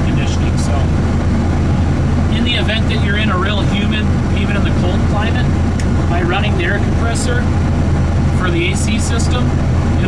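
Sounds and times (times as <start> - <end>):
man talking: 0.0 - 1.0, 2.3 - 7.5, 8.3 - 10.0
engine humming inside cab: 0.0 - 10.0.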